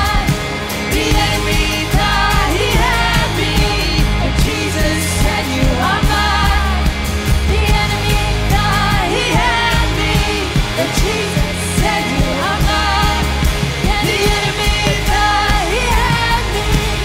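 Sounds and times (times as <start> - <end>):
bass guitar: 0.0 - 17.0
drums: 0.0 - 17.0
electric guitar: 0.0 - 17.0
woman singing into microphone: 0.0 - 17.0.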